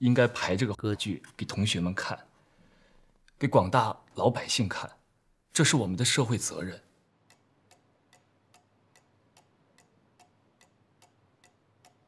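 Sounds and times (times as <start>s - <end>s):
clock ticking: 7.2s - 12.0s.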